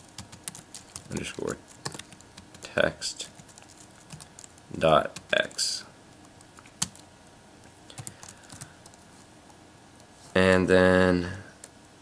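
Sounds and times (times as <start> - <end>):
computer keyboard keystrokes: 0.2 - 2.7, 8.0 - 9.0.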